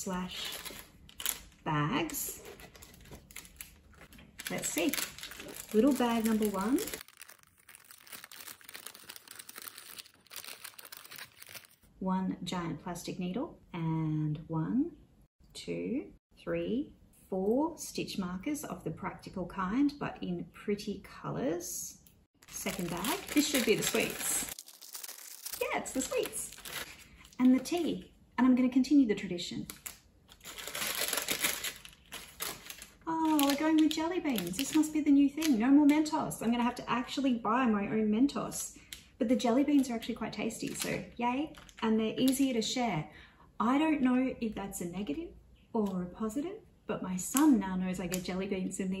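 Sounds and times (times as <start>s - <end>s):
paper bag rustling and crinkling: 0.2s - 1.6s, 2.3s - 11.9s, 22.5s - 27.8s, 29.7s - 34.9s
paper tearing: 4.4s - 11.8s, 22.7s - 27.0s.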